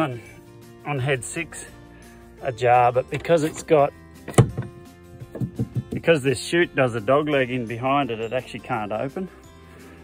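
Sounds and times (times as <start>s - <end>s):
background music: 0.0s - 10.0s
hand knocking on metal door: 4.4s - 6.1s.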